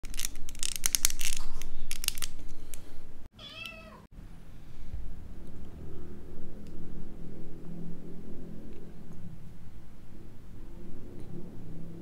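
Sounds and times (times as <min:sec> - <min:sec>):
plastic parts clicking and creaking: 0:00.0 - 0:02.8
cat meowing: 0:03.4 - 0:04.1.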